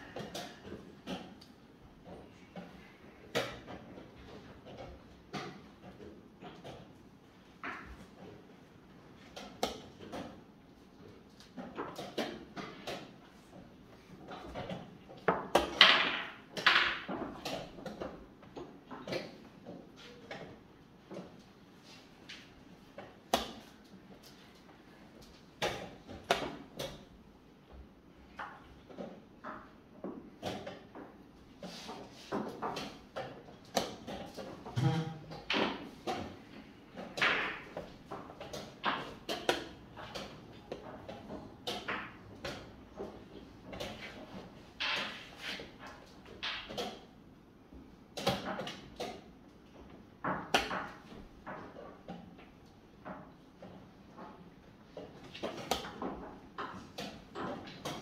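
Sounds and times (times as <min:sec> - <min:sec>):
chess pieces knocking on board: 0:14.2 - 0:19.5, 0:28.3 - 0:47.1, 0:48.1 - 0:58.0.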